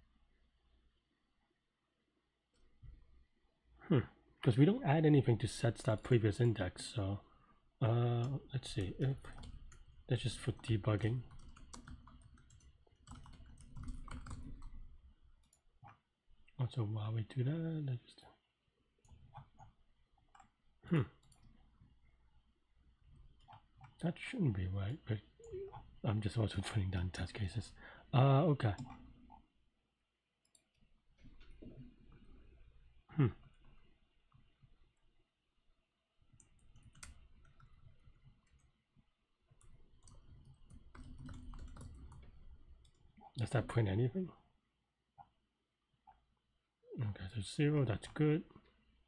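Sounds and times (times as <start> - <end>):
computer keyboard typing: 8.2 - 15.6, 36.4 - 38.7, 39.6 - 43.0
person saying hmm: 33.1 - 33.4.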